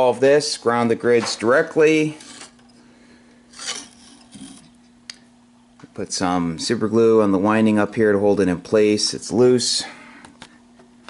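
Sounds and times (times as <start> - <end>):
faint steady hum: 0.0 - 11.0
rubbing scrape on metal plate: 3.5 - 4.7.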